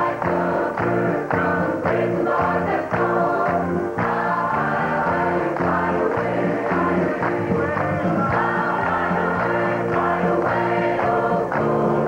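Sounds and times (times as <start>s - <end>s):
gospel choir singing a hymn: 0.0s - 12.0s
hand-clapping on the beat: 0.0s - 12.0s.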